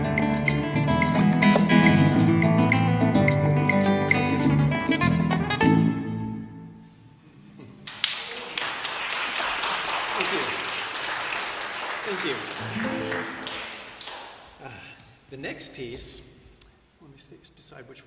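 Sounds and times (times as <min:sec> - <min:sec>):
solo classical guitar: 0:00.0 - 0:06.6, 0:12.6 - 0:13.5
audience applause: 0:07.9 - 0:14.5.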